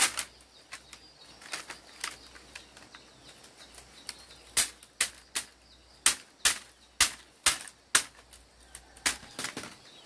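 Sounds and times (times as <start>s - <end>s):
machete chopping bamboo: 4.5s - 9.8s.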